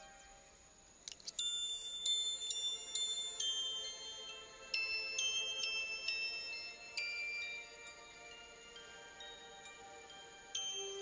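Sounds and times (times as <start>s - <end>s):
bell-like chime note: 1.4s - 11.0s.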